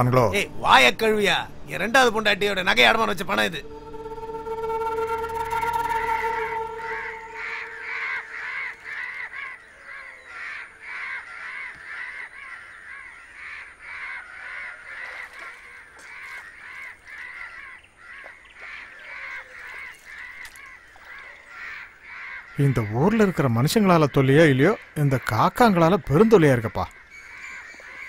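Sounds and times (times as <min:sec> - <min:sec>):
crows cawing: 0:03.7 - 0:25.6, 0:26.9 - 0:28.0.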